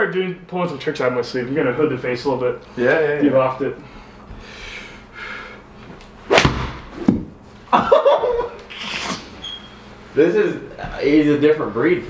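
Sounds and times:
golf club striking ball: 6.3 - 7.3
ball hitting screen: 6.3 - 7.4.

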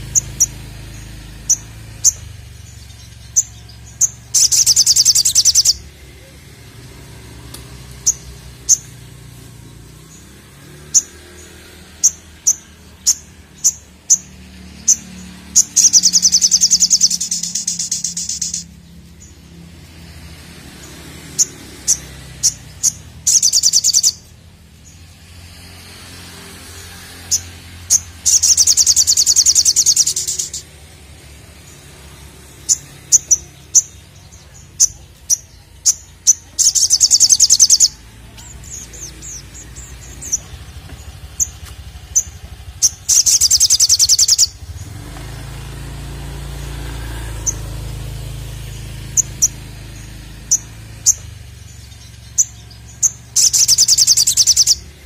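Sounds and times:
bird chirping and trilling: 0.0 - 55.0.

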